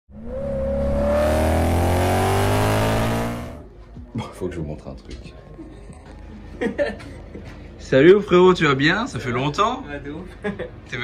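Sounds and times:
car engine revving: 0:00.1 - 0:03.6.

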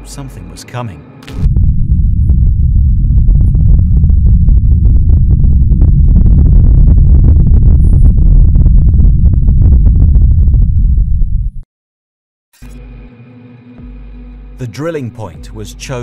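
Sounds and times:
crackling: 0:01.2 - 0:11.4
deep rumble: 0:01.2 - 0:11.7.

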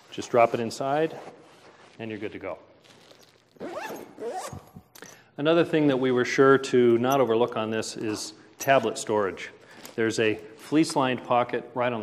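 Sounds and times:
backpack zipper being drawn: 0:00.2 - 0:04.8.

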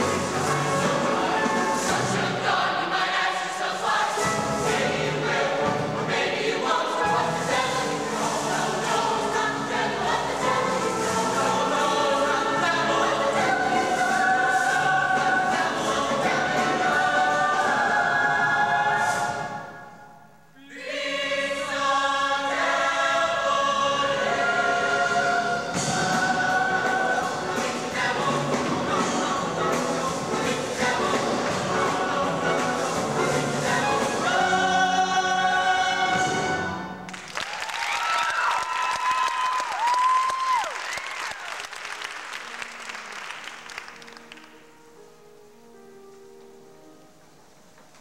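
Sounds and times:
choir singing: 0:00.0 - 0:37.1.

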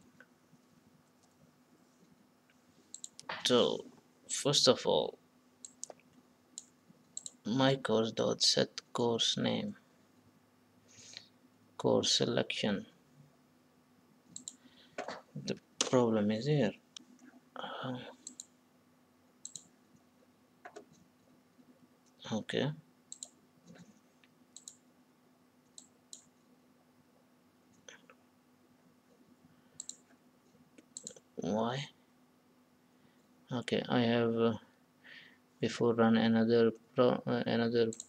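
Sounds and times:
computer mouse click: 0:02.9 - 0:03.5, 0:05.6 - 0:07.4, 0:14.3 - 0:14.6, 0:18.2 - 0:18.5, 0:19.4 - 0:19.7, 0:20.6 - 0:21.0, 0:23.1 - 0:23.9, 0:24.6 - 0:24.8, 0:25.6 - 0:26.3, 0:29.8 - 0:30.1, 0:30.8 - 0:31.2.

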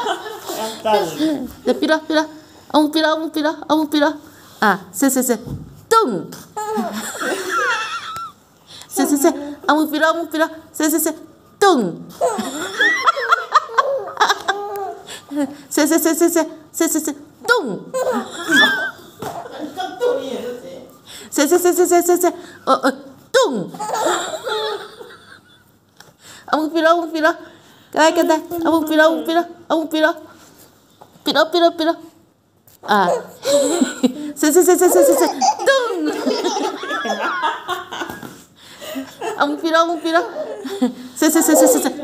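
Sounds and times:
baby laughing: 0:06.6 - 0:08.3, 0:12.2 - 0:15.1, 0:17.9 - 0:20.2, 0:23.8 - 0:24.8, 0:33.0 - 0:38.2, 0:40.2 - 0:42.0
adult laughing: 0:33.4 - 0:38.3
baby laughing and squealing: 0:34.7 - 0:36.0.

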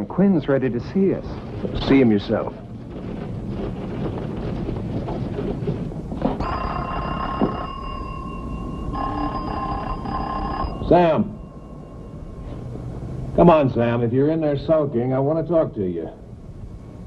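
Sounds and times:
telephone ringing: 0:06.4 - 0:13.0.

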